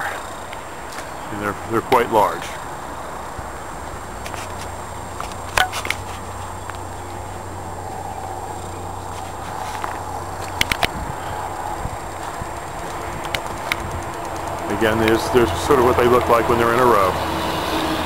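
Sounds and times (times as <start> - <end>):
low hum: 2.5 - 18.0
footsteps and camera handling clicks: 4.2 - 6.8, 9.1 - 11.0, 11.9 - 15.2.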